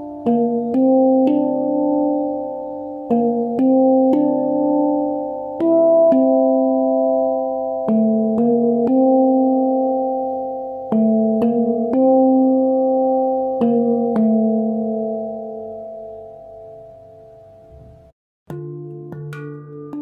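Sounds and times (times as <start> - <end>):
handpan notes ringing: 0.0 - 20.0.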